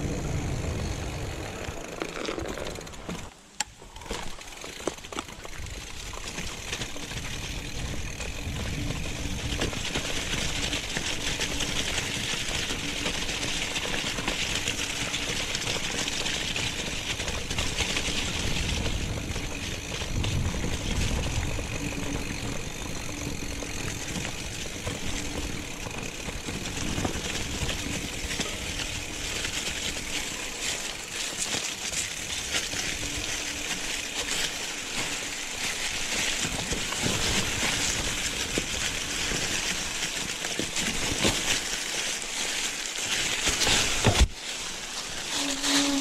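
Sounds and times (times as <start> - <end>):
bike rattle: 0.0 - 46.0
bike tyres rumbling on grass: 0.0 - 46.0.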